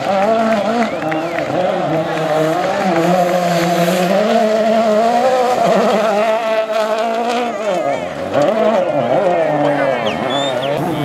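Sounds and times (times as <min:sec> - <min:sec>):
rally car engine revving high: 0:00.0 - 0:11.0.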